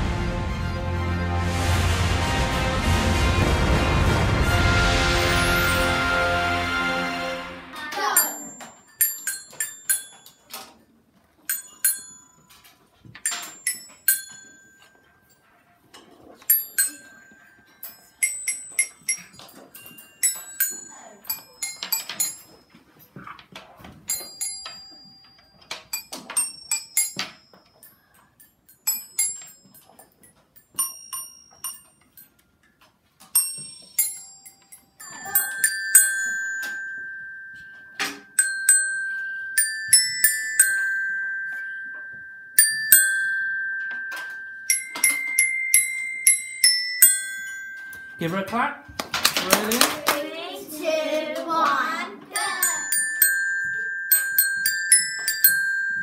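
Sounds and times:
glockenspiel notes struck with mallets: 4.7 - 10.4, 16.5 - 22.6, 24.1 - 28.1, 30.6 - 32.2, 33.4 - 49.0, 52.3 - 56.0.

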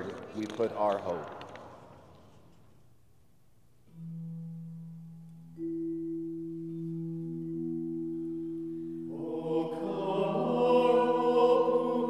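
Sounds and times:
church organ chord: 3.9 - 12.0
people singing: 9.1 - 12.0.

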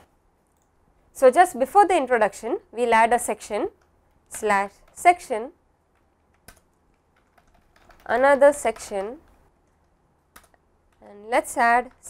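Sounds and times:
person speaking: 1.2 - 5.6, 8.0 - 9.3, 11.0 - 12.0.

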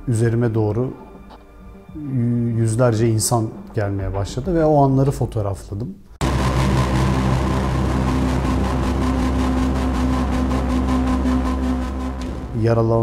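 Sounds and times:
motor engine running: 6.2 - 12.6.

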